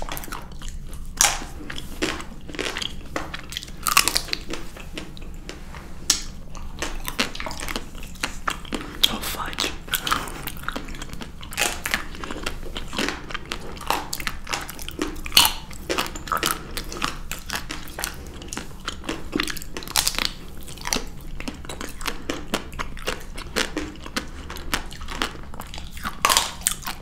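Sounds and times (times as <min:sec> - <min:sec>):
biting and chewing ice cream: 0:00.0 - 0:27.0
chocolate coating crunching: 0:00.0 - 0:27.0.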